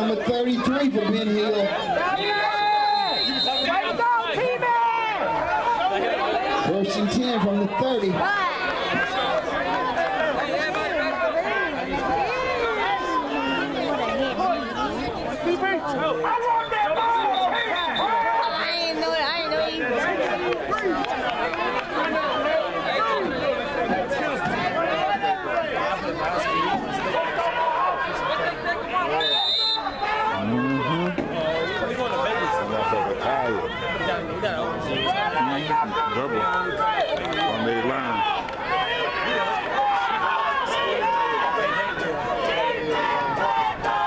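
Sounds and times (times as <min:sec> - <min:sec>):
crowd chattering: 0:00.0 - 0:44.0.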